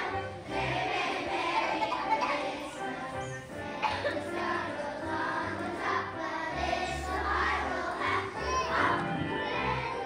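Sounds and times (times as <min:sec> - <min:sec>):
children singing: 0:00.0 - 0:10.0.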